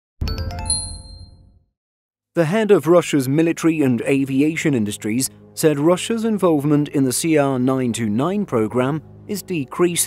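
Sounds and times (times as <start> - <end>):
bright chime notes: 0.2 - 1.6.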